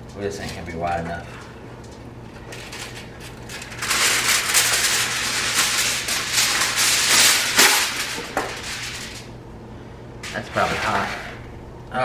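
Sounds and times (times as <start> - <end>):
aluminium foil crinkling: 0.1 - 9.3.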